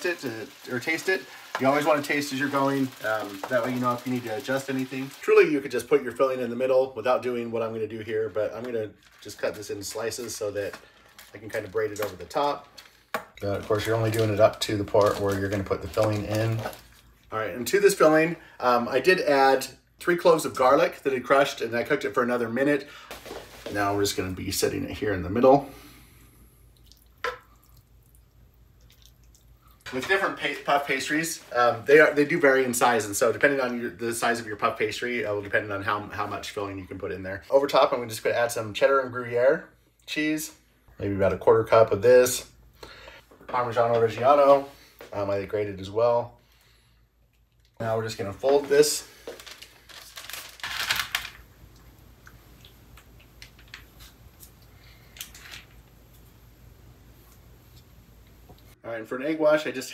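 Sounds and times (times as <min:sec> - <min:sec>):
parchment paper crinkling: 0:00.0 - 0:06.3, 0:08.2 - 0:17.3, 0:48.4 - 0:51.5.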